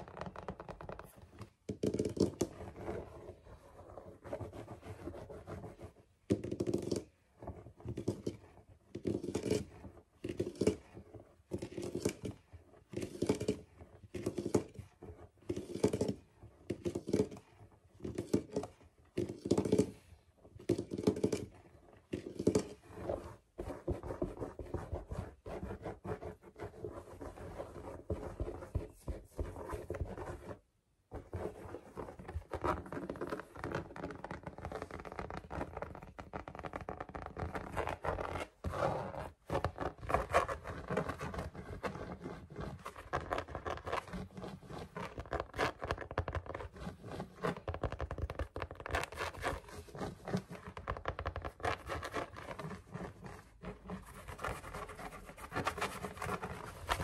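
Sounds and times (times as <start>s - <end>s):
fingers scratching shaggy rug: 31.2s - 57.0s.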